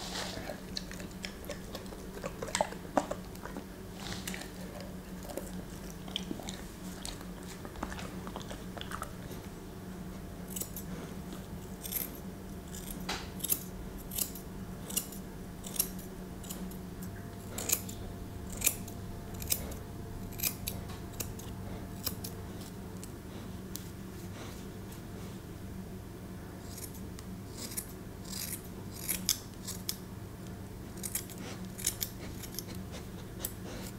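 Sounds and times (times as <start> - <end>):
scissors snipping fur: 10.5 - 10.9, 11.6 - 23.9, 26.6 - 33.9.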